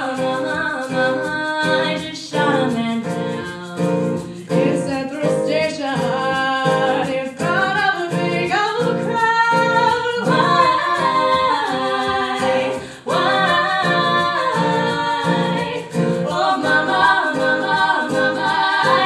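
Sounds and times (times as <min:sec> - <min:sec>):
strummed acoustic guitar: 0:00.0 - 0:19.0
women singing together: 0:00.0 - 0:19.0.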